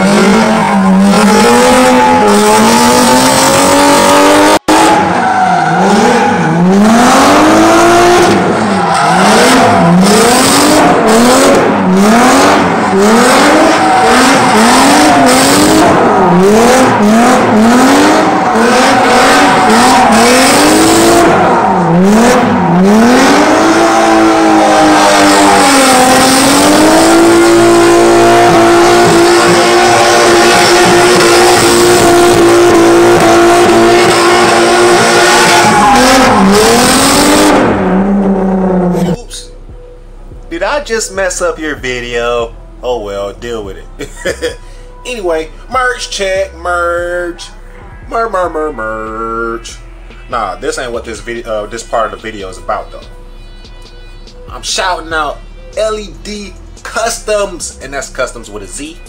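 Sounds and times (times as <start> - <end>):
tyres spinning and squealing: 0.0 - 39.4
car engine revving: 0.0 - 53.3, 54.3 - 59.0.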